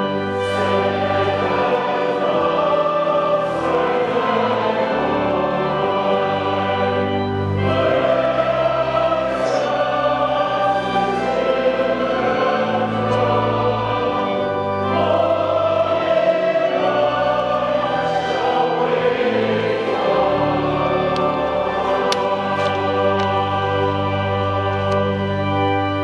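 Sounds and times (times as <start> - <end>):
church choir singing: 0.0 - 26.0.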